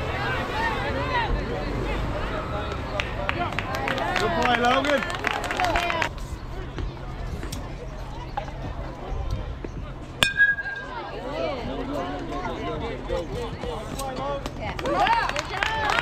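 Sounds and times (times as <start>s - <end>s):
voices rising: 0.0s - 13.9s
metal bat striking ball: 10.2s - 11.1s.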